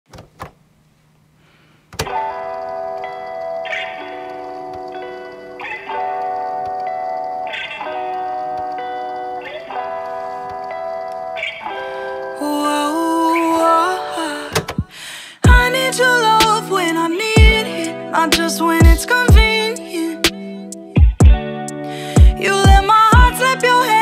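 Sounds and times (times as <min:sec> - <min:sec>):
slow instrumental sustained chords: 0:02.1 - 0:14.5, 0:15.5 - 0:24.0.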